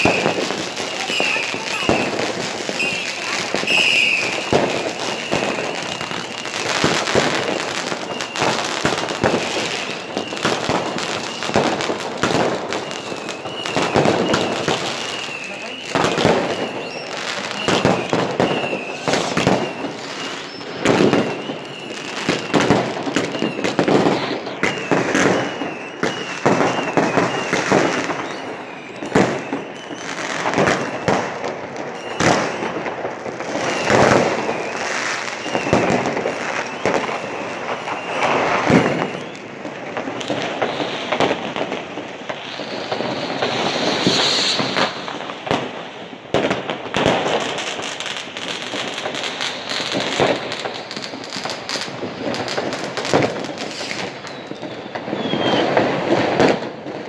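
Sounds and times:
fireworks and firecrackers bangs: 0:00.0 - 0:57.0.

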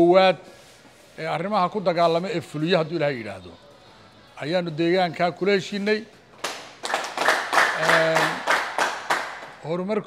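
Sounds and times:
people clapping: 0:06.3 - 0:09.7.

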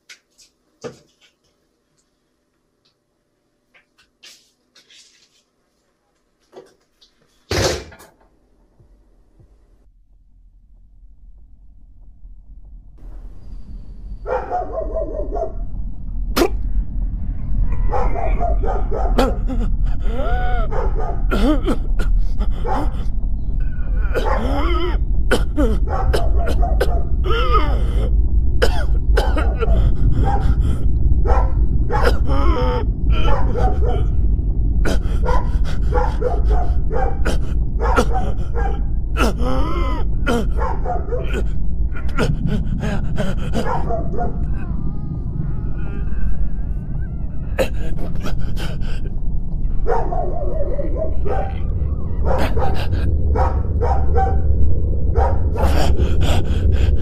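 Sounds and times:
heavy low rumble: 0:08.4 - 0:57.0
animal yelps and whines: 0:17.6 - 0:19.3, 0:43.6 - 0:47.7, 0:49.6 - 0:54.5.

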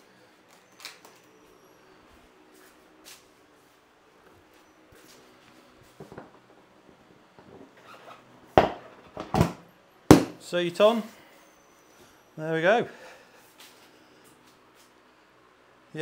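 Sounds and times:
faint steady hum: 0:00.0 - 0:16.0
sharp knock: 0:10.1 - 0:10.4.

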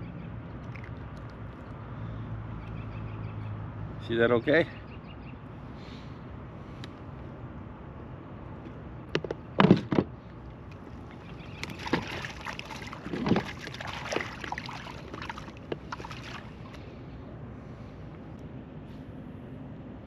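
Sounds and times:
water splashing and sloshing: 0:00.5 - 0:01.8, 0:09.2 - 0:17.0.

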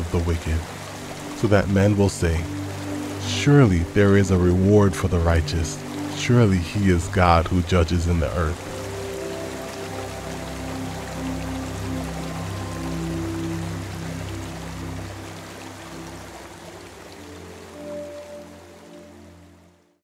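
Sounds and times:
running water hiss: 0:00.0 - 0:19.6
slow background music chords: 0:00.0 - 0:20.0.

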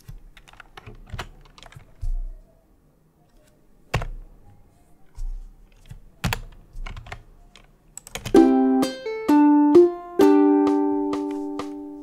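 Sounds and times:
keyboard keystrokes: 0:00.0 - 0:02.2, 0:05.7 - 0:08.4
plucked ukulele notes: 0:08.4 - 0:12.0.

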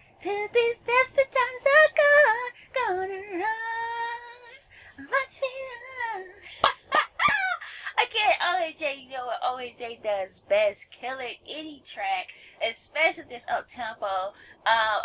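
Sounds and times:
woman singing wordlessly: 0:00.2 - 0:06.6, 0:07.9 - 0:15.0.

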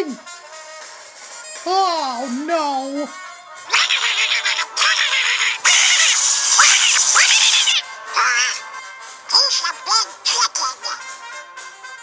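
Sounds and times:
background music: 0:00.0 - 0:12.0
squawking cartoon duck voice: 0:03.7 - 0:08.7, 0:09.3 - 0:11.1.

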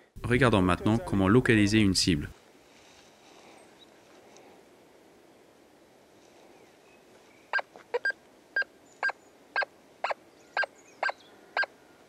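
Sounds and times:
metal detector beeps: 0:07.6 - 0:09.7.

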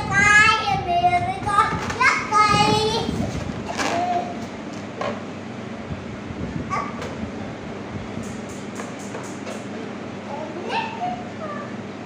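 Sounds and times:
balloon rubbing: 0:03.2 - 0:04.4.

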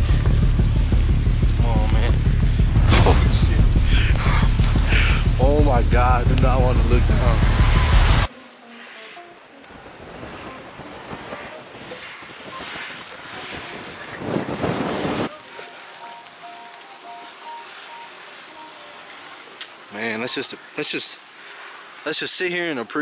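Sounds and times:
outdoor wind noise: 0:00.0 - 0:23.0
wind buffeting microphone: 0:09.7 - 0:15.3.

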